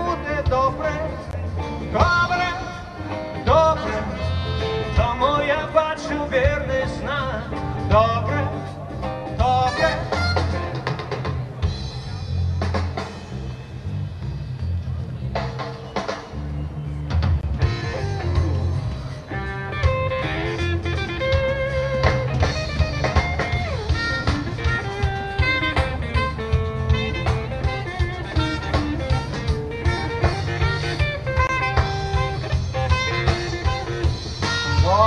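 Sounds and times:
electric guitar notes: 0.0s - 11.1s, 17.5s - 35.0s
bass guitar: 0.0s - 35.0s
drum kit steady beat: 0.0s - 35.0s.

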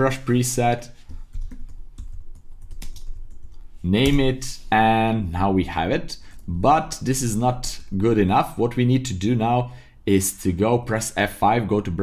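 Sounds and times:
typing on computer keyboard: 1.3s - 3.6s.

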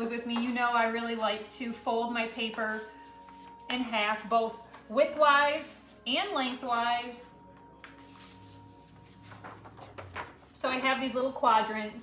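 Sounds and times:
paper creasing and rustling: 2.2s - 11.2s.

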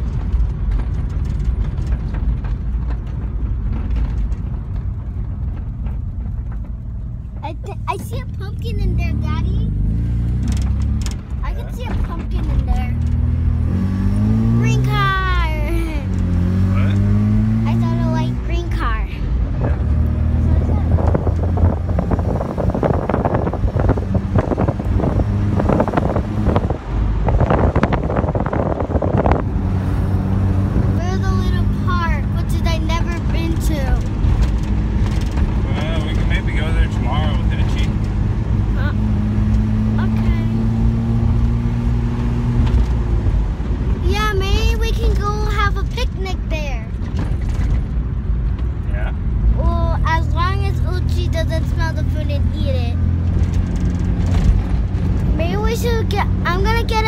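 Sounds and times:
road noise: 0.0s - 57.0s
rotary engine accelerating: 0.0s - 57.0s.

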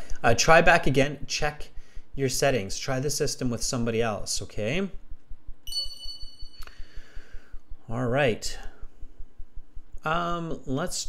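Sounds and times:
high electronic ding: 5.7s - 6.8s.

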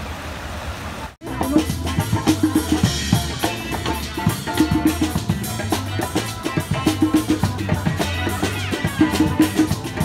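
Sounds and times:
amplified guitars: 1.2s - 10.0s
drum kit beat: 1.2s - 10.0s
hand drum: 1.2s - 10.0s.

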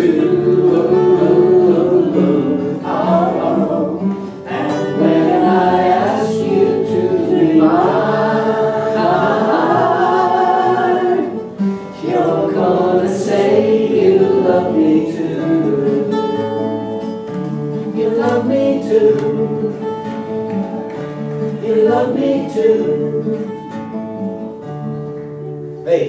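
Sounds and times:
two voices singing: 0.0s - 17.0s, 17.7s - 20.4s, 21.4s - 23.9s
strummed acoustic guitars: 0.0s - 26.0s.

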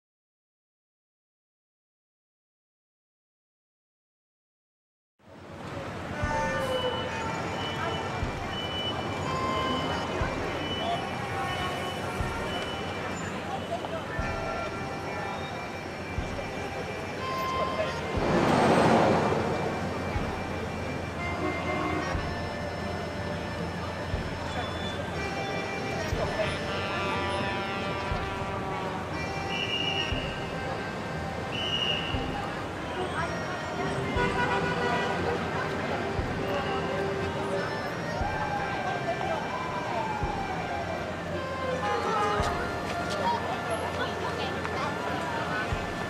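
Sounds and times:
busy city street noise: 5.2s - 46.0s
people's voices: 5.4s - 46.0s
car horn: 6.2s - 14.3s, 21.2s - 22.5s, 26.4s - 30.3s, 34.0s - 35.6s, 41.4s - 42.7s
vehicle passing close by: 18.1s - 20.0s.

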